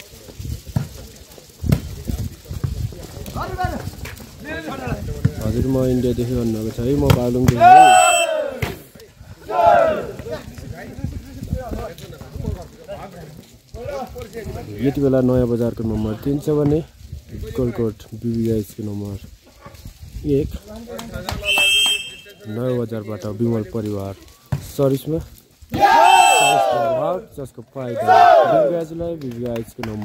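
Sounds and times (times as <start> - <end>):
people shouting: 7.5 - 8.8, 9.4 - 10.2, 21.4 - 22.3, 25.7 - 27.2, 27.9 - 28.8.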